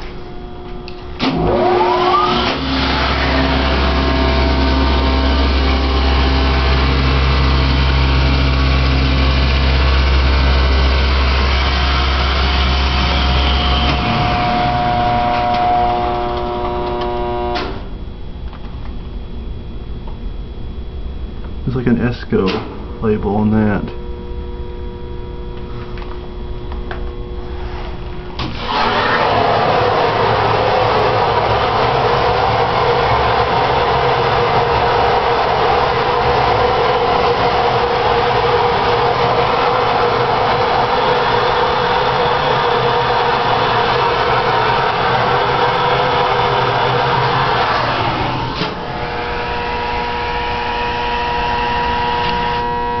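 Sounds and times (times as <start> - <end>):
hydraulic pump motor humming: 0.0 - 18.6, 23.9 - 53.0.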